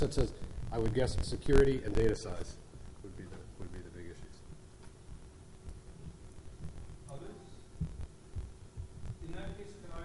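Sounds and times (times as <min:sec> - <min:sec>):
low dull thumps: 0:05.1 - 0:07.0, 0:07.7 - 0:09.3.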